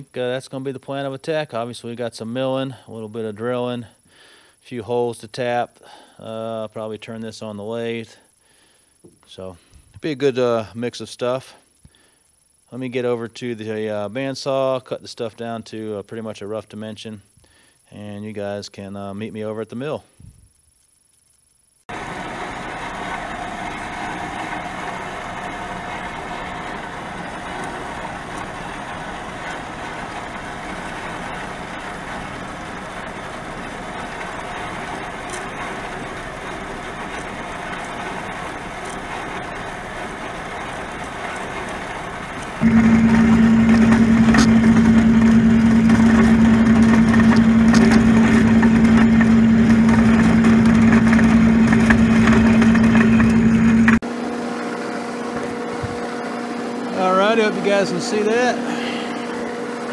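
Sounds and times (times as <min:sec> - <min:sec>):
strong steady hum: 0:21.9 - 0:54.3
bandsaw cutting metal: 0:22.6 - 0:54.0.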